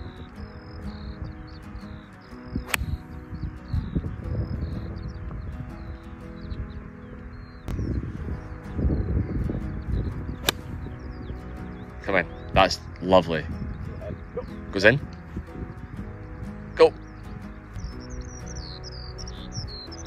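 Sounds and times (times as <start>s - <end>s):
background music: 0.0s - 20.0s
birds chirping faintly: 0.0s - 20.0s
golf club striking ball: 2.6s - 3.0s, 10.4s - 10.7s.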